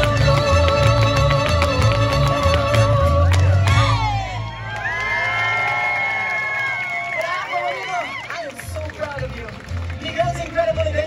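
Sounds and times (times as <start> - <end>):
live latin folk music: 0.0 - 6.1, 8.6 - 11.0
crowd cheering and whooping: 3.6 - 8.6.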